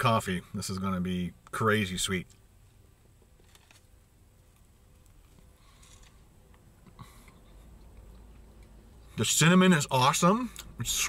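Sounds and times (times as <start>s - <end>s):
faint chewing: 3.4s - 9.1s.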